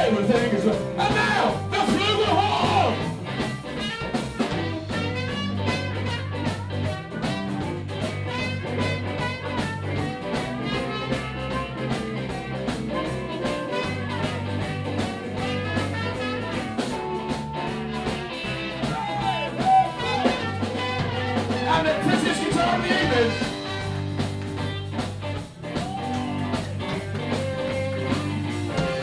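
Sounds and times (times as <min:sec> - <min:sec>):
drum kit beat: 0:00.0 - 0:29.0
electric guitars: 0:00.0 - 0:29.0.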